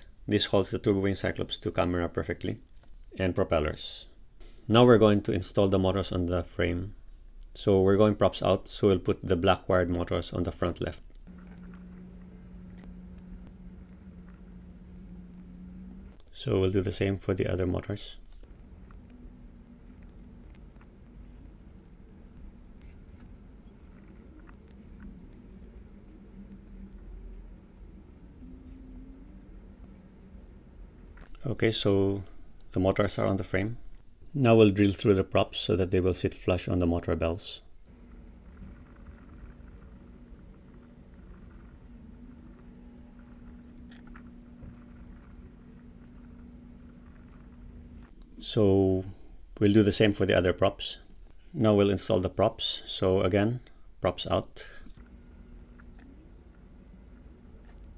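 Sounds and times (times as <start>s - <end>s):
low steady hum: 0.0s - 57.9s.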